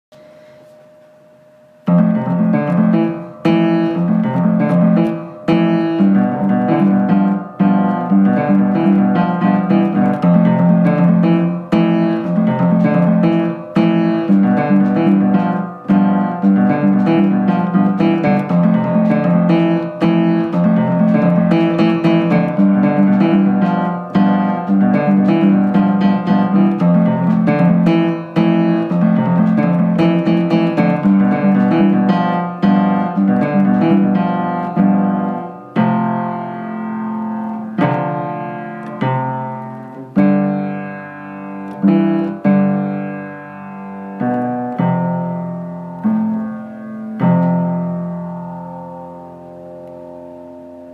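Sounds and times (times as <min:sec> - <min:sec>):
upright piano playing: 0:00.1 - 0:50.9.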